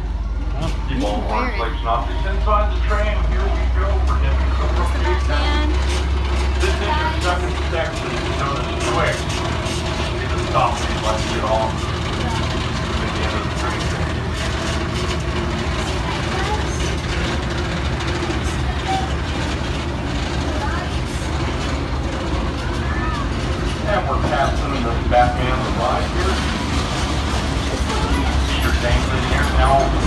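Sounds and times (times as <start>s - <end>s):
faint passenger voices: 0.0s - 30.0s
tram engine hum and road rumble: 0.0s - 30.0s.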